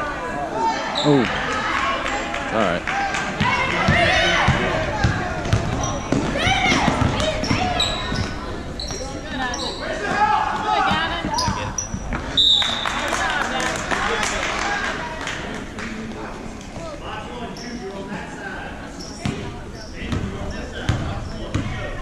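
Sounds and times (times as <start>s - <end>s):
basketball bouncing on wood floor: 3.4s - 8.3s
sneakers squeaking: 3.4s - 13.0s, 17.5s - 17.9s, 18.9s - 22.0s.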